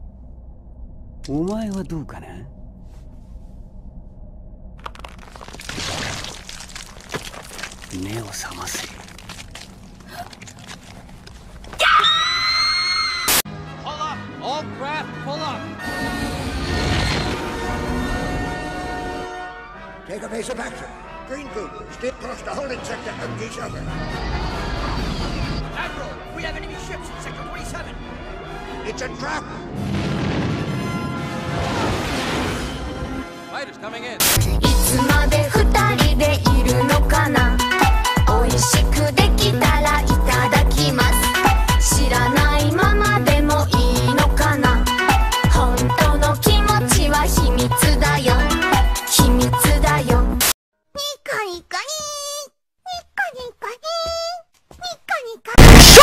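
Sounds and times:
orchestral film music: 0:13.5 - 0:24.6
high-pitched girl's voice: 0:50.9 - 0:55.6.

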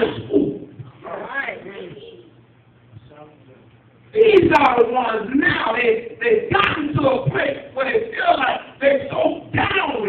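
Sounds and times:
faint hummed voice: 0:00.0 - 0:10.0
steady low hum: 0:00.0 - 0:10.0.

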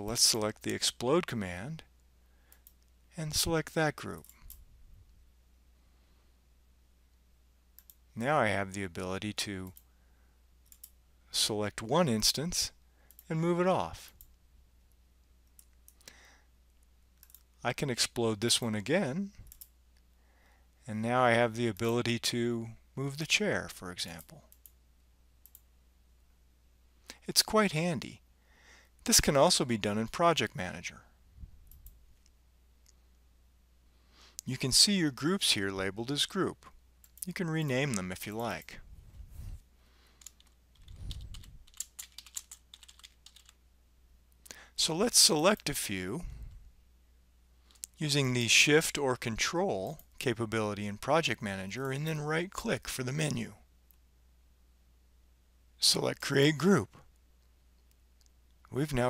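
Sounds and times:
low steady hum: 0:00.0 - 0:59.0
computer mouse clicks: 0:07.8 - 0:08.0, 0:10.6 - 0:11.0, 0:17.2 - 0:17.5, 0:19.4 - 0:19.7, 0:25.4 - 0:25.7, 0:40.2 - 0:43.6
typing on keyboard: 0:40.2 - 0:43.6.

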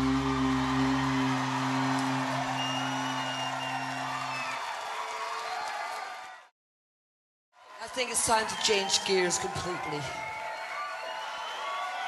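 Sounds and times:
crowd cheering and whistling: 0:00.0 - 0:06.5, 0:07.6 - 0:12.0.

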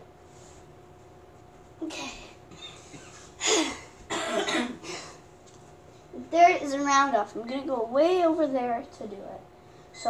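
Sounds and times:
girl coughing: 0:01.9 - 0:05.2.

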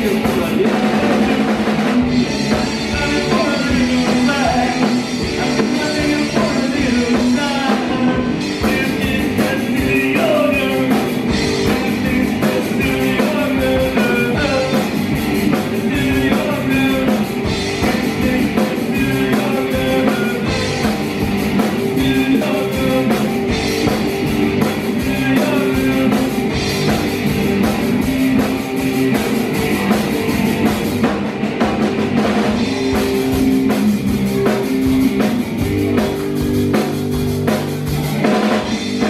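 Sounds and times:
bass guitar: 0:00.0 - 0:39.0
drum kit beat: 0:00.0 - 0:39.0
electric guitars: 0:00.0 - 0:39.0.

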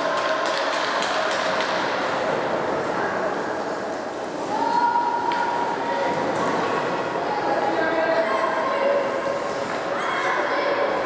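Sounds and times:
crowd and arena noise: 0:00.0 - 0:11.0.

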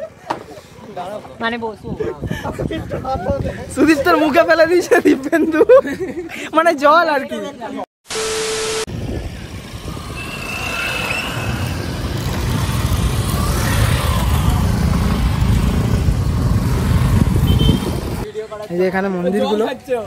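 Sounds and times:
motorcycle engines passing: 0:09.0 - 0:18.3.

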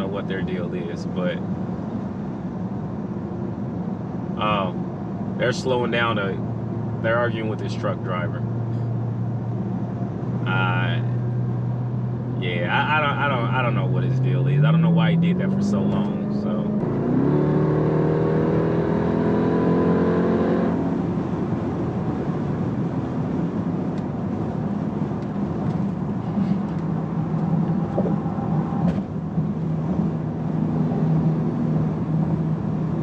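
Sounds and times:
road noise: 0:00.0 - 0:33.0
engine accelerating hard: 0:12.6 - 0:22.8.

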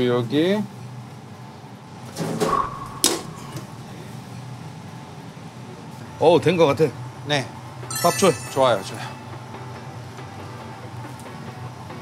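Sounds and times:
utensils and cookware handled: 0:07.9 - 0:09.2
sharp metallic clink: 0:07.9 - 0:09.3.

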